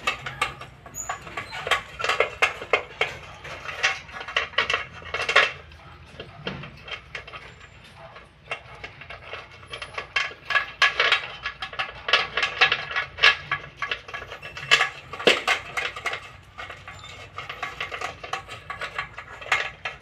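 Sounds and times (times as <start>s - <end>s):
dog eating from metal bowl: 0.0s - 20.0s.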